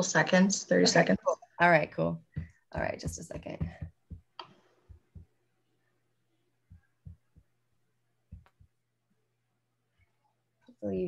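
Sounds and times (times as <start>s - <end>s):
soft low thumps: 1.7s - 5.3s, 6.7s - 7.5s, 8.3s - 8.7s.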